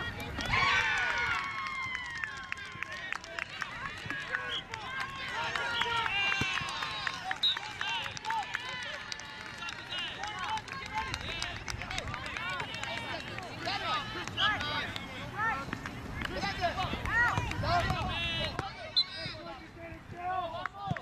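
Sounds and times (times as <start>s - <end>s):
voices calling and shouting: 0.0s - 21.0s.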